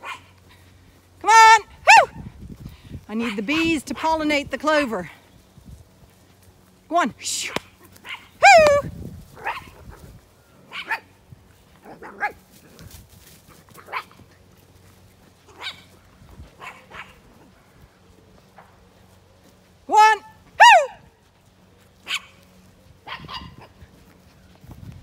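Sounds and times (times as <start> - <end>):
dog barking: 0.0 - 0.3, 1.9 - 2.2, 7.5 - 8.7, 9.4 - 9.9, 10.7 - 11.1, 15.5 - 15.9, 16.6 - 17.2, 22.0 - 22.4, 23.0 - 23.8.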